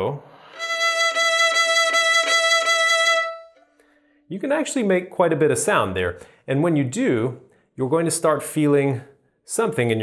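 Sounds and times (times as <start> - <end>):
violin high held note: 0.3 - 4.2.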